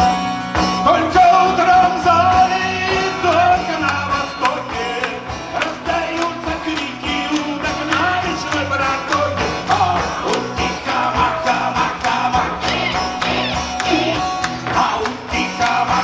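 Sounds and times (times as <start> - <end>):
strummed acoustic guitar: 0.0 - 16.0
steady rhythmic beat: 0.6 - 16.0
man singing: 0.7 - 16.0.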